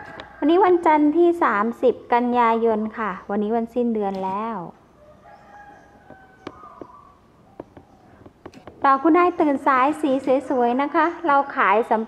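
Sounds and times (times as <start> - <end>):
rooster crowing faintly: 0.0 - 0.9, 5.0 - 8.2
sharp click: 7.6 - 8.9.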